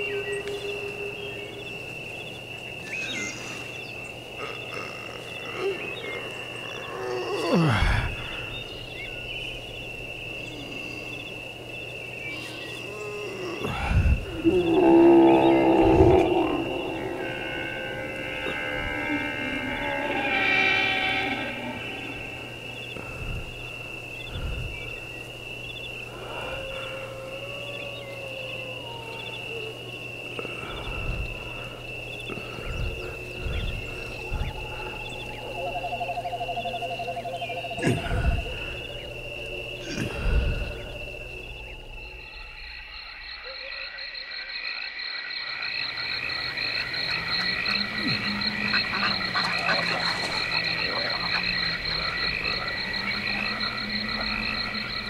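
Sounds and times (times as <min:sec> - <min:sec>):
low hum: 0:13.6 - 0:28.1, 0:28.8 - 0:43.5
gliding pitched sounds: 0:14.8 - 0:23.1.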